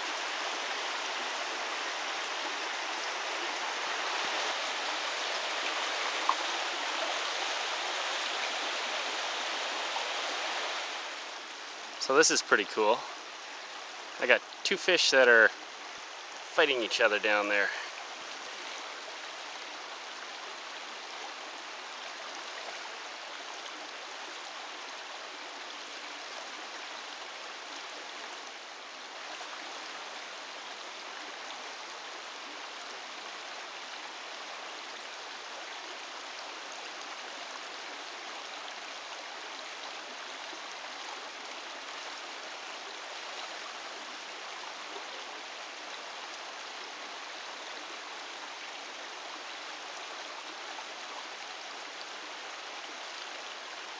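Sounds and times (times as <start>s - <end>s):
creek water running over rocks: 0.0s - 53.9s.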